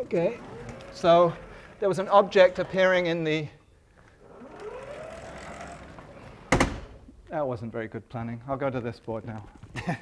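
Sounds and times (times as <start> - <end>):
chalkboard panel sliding with squeal: 4.2 - 6.5.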